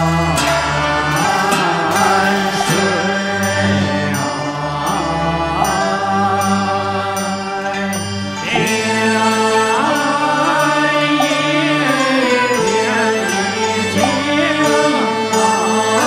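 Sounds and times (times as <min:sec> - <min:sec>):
gliding chant-like vocals: 0:00.0 - 0:16.0
held instrumental tones: 0:00.0 - 0:16.0
light percussion strokes: 0:00.0 - 0:16.0.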